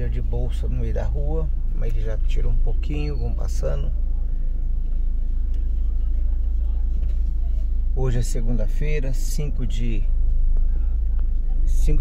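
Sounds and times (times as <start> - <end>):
steady low rumble: 0.0 - 12.0
faint crowd murmur: 3.9 - 8.0, 10.1 - 12.0.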